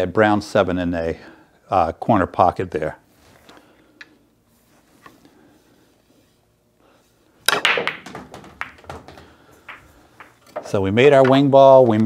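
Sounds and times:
cue striking cue ball: 7.4 - 10.7
pool balls clacking: 7.4 - 12.0.

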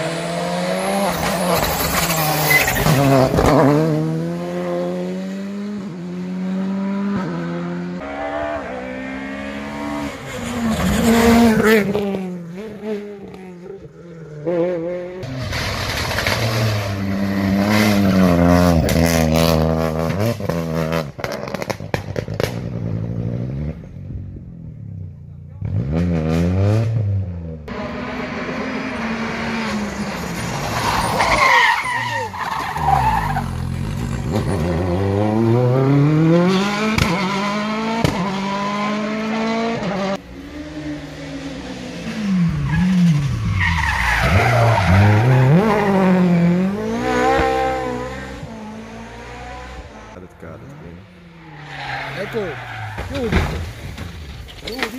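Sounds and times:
rally car engines revving: 0.0 - 54.9
exhaust crackles and pops: 21.2 - 22.8.

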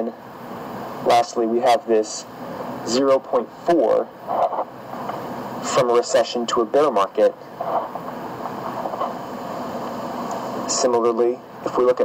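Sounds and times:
steady hiss and hum: 0.0 - 12.0.

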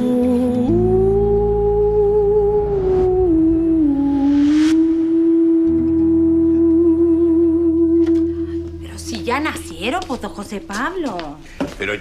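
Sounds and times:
low drone: 0.0 - 9.2
sustained note: 0.1 - 9.6.

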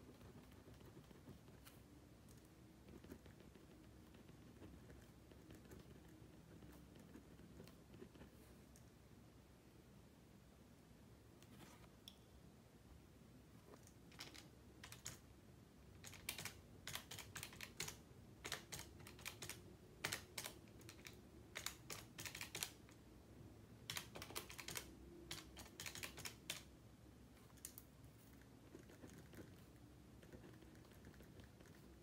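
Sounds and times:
pen scratching on paper: 0.0 - 1.8, 2.8 - 8.5.

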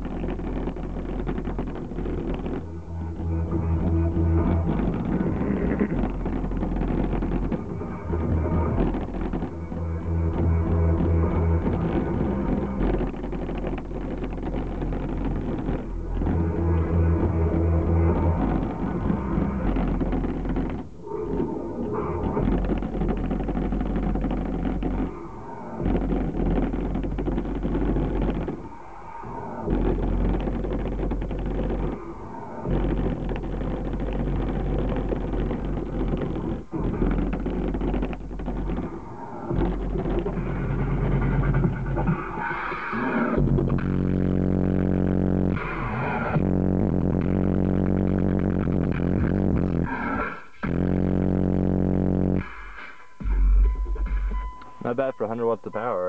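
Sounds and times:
buzzing synth bass note: 0.0 - 20.9, 22.2 - 25.2, 25.8 - 28.6, 29.6 - 42.1, 43.4 - 49.9, 50.6 - 55.4.

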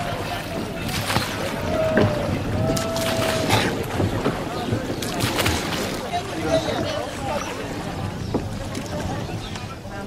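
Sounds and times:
murmur of voices: 0.0 - 10.0
oars knocking and dipping in water: 0.0 - 10.0
wind on microphone: 0.0 - 10.0.

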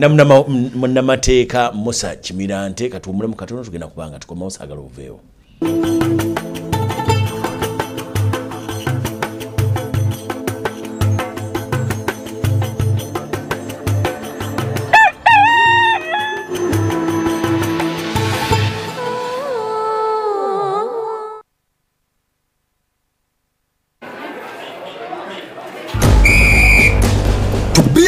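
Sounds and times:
rooster crowing: 14.9 - 16.6
whistle blast: 26.0 - 27.1
music with steady drumbeat: 26.0 - 28.0.

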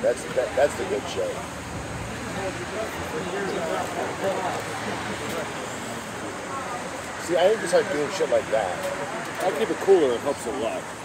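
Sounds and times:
faint voices: 0.0 - 11.0
street traffic passing: 0.0 - 11.0.

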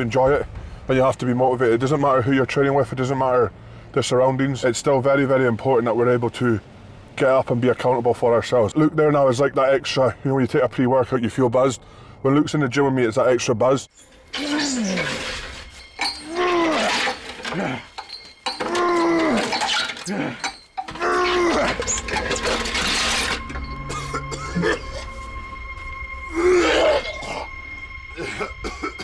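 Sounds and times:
background music: 11.1 - 29.0
man grunting and shouting with effort: 18.6 - 21.8.

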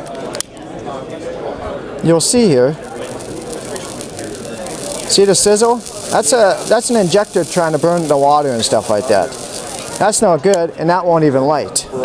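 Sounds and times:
water sizzling and spitting in flame: 2.8 - 10.2.

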